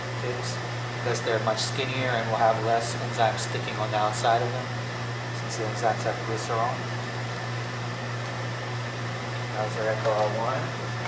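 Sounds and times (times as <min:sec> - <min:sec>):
steady low hum: 0:00.0 - 0:11.0
man speaking: 0:09.5 - 0:10.8.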